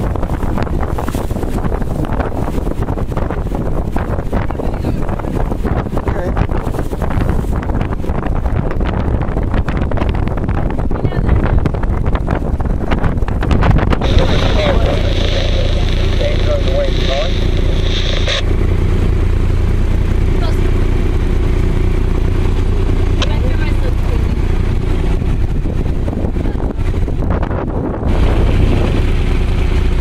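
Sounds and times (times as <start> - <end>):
wind on microphone: 0.0 - 30.0
boat motor drone: 13.3 - 30.0
indistinct voices: 14.0 - 18.4
high whine: 14.0 - 20.9.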